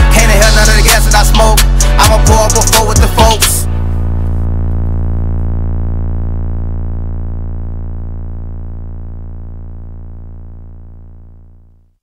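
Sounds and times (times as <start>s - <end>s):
low synthesizer note held: 2.2s - 12.0s.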